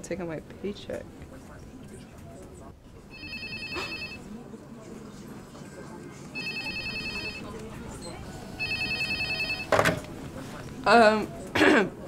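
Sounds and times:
cordless phone ringing: 0:03.1 - 0:04.2, 0:06.4 - 0:07.5, 0:08.6 - 0:09.8.

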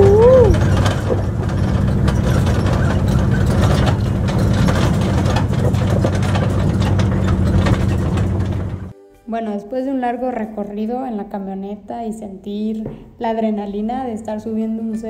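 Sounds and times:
truck engine under load: 0:00.0 - 0:08.9
vehicle body rattling and knocking: 0:00.0 - 0:08.9.

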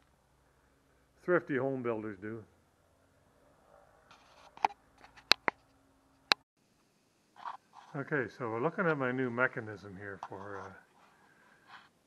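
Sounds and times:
sharp clicks and taps: 0:04.6 - 0:05.6.

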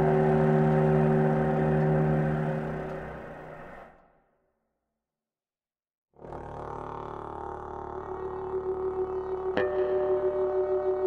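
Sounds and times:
electric bass guitar: 0:00.0 - 0:03.8
bass saxophone: 0:06.2 - 0:09.6.

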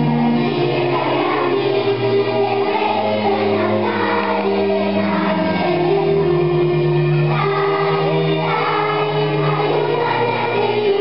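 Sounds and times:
children's choir singing: 0:00.0 - 0:11.0.

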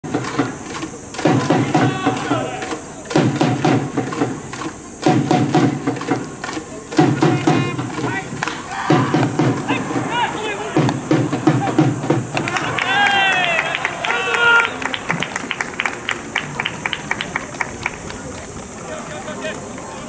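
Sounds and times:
steady drumbeats: 0:00.0 - 0:13.8
fans chanting: 0:01.2 - 0:04.0, 0:06.9 - 0:14.8.

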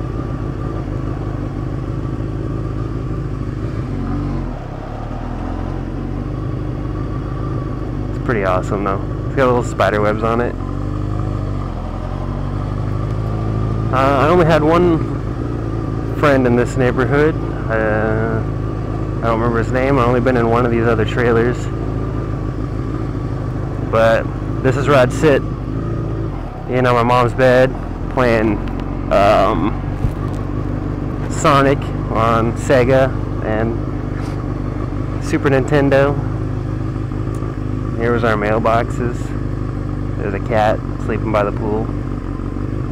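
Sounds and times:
motorcycle engine running at low revs: 0:00.0 - 0:42.9.

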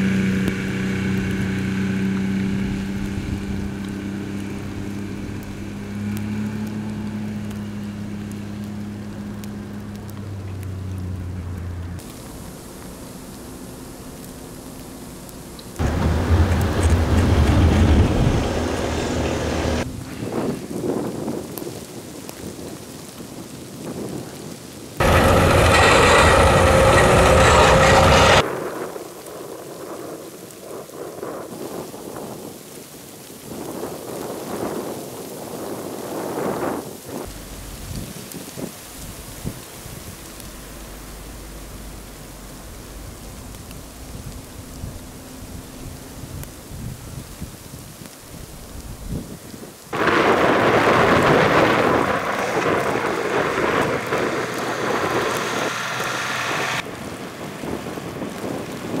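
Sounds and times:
snowplow engine: 0:00.0 - 0:20.2, 0:25.0 - 0:28.7, 0:37.2 - 0:49.1, 0:50.0 - 0:59.0
plow blade through snow: 0:00.0 - 0:30.1, 0:30.8 - 0:59.0
blizzard wind: 0:00.0 - 0:59.0
low hum: 0:08.7 - 0:20.0, 0:25.0 - 0:28.4, 0:37.3 - 0:47.4, 0:50.0 - 0:56.8.

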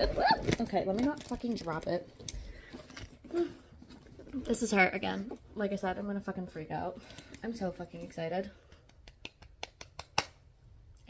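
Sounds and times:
handbag rustling and clicking: 0:00.0 - 0:06.0.

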